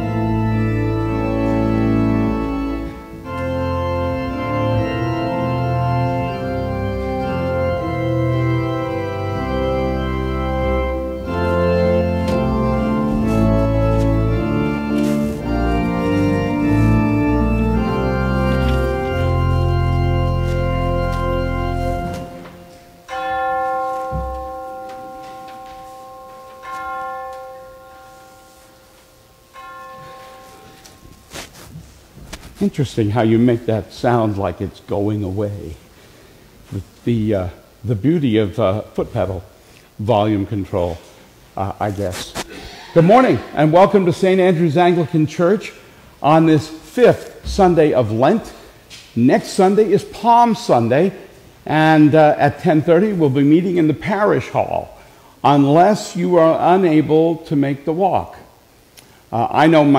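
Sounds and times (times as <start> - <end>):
deep organ pedal bass: 0.0 - 22.9, 47.4 - 48.4
organ playing sustained chords: 0.0 - 35.9, 36.7 - 59.9.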